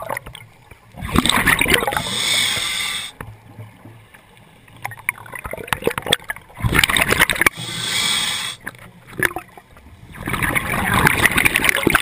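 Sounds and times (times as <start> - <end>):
scuba regulator hiss underwater: 1.8 - 3.1, 7.6 - 8.7.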